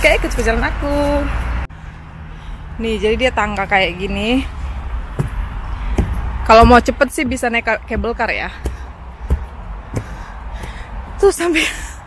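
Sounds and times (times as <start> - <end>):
steady low rumble: 1.6 - 12.0
footsteps on leafy dirt trail: 4.5 - 11.4.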